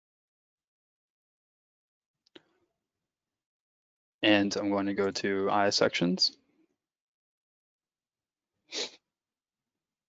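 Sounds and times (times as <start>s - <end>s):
person sneezing: 8.7s - 9.0s.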